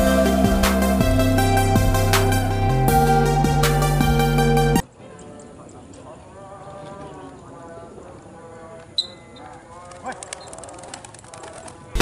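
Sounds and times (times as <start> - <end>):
distant indistinct voices: 4.8 - 12.0.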